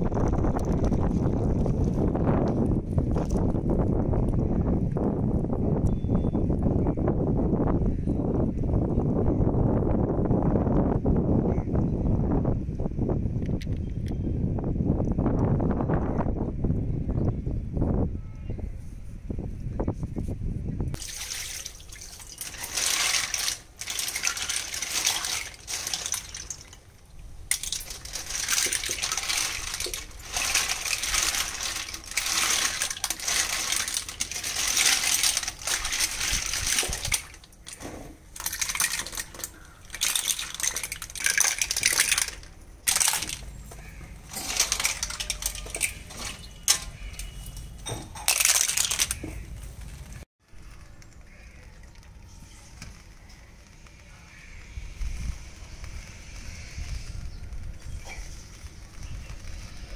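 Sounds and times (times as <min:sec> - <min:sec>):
wind buffeting microphone: 0:00.0 - 0:21.1, 0:53.0 - 0:59.9
water sloshing: 0:21.0 - 0:49.5.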